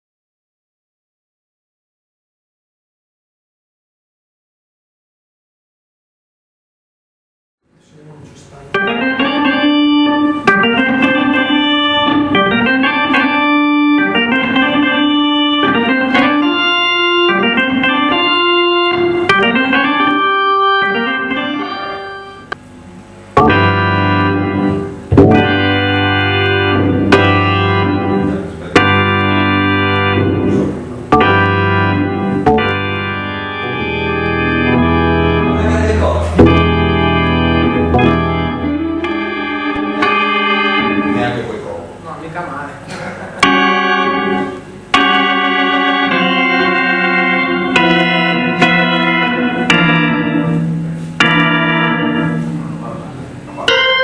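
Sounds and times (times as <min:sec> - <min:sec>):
organ playing: 0:08.5 - 0:42.4, 0:43.2 - 0:54.0.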